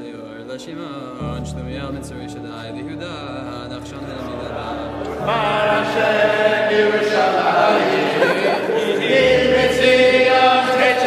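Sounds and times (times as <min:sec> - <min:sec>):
group of voices singing: 0:04.1 - 0:11.0.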